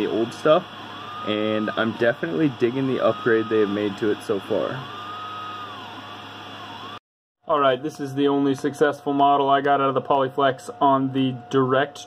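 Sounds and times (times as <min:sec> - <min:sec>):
stepper motor whine: 0:00.0 - 0:07.0
fan hum: 0:00.0 - 0:12.0.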